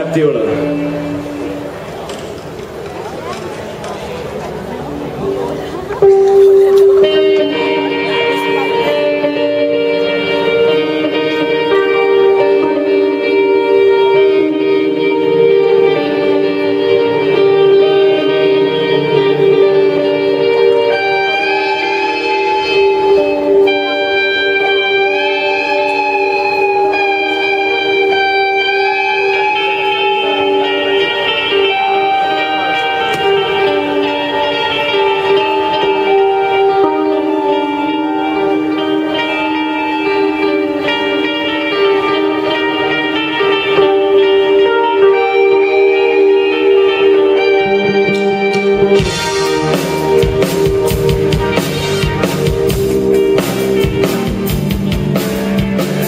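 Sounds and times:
guitar bending notes: 0:00.0 - 0:56.0
rock band playing electric guitars: 0:00.0 - 0:56.0.

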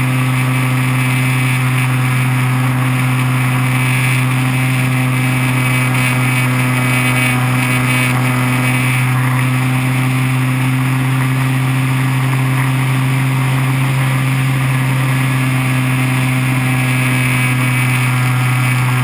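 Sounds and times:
electric motor and propeller drone: 0:00.0 - 0:19.0.

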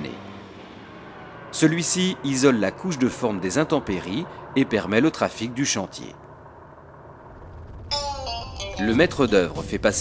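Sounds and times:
faint low rumble: 0:03.8 - 0:10.0
background guitar music: 0:07.9 - 0:09.9.

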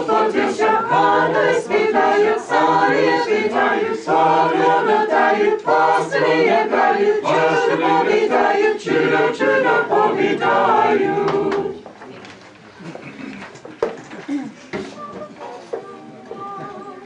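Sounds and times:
mixed group singing unaccompanied: 0:00.0 - 0:11.9, 0:14.9 - 0:17.0.

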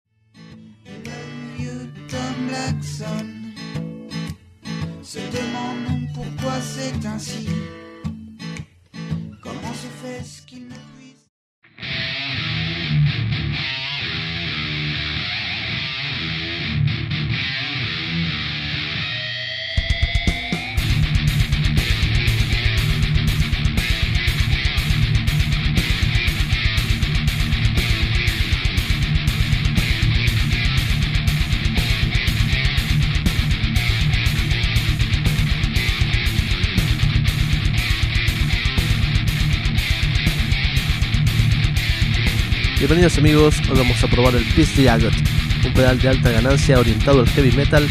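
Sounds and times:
distorted electric guitar riffing: 0:00.4 - 0:10.7, 0:11.6 - 0:47.9.

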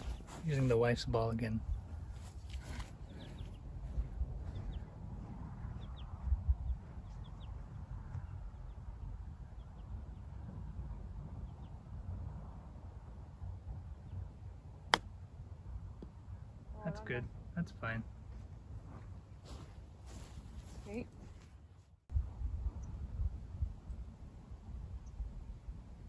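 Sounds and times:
wind rumble on microphone: 0:00.0 - 0:17.5, 0:18.1 - 0:26.0
golf club striking ball: 0:14.9 - 0:15.1.

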